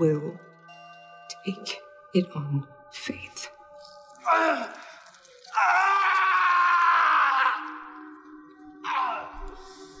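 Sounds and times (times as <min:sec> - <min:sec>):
person crying out: 0:04.2 - 0:04.8.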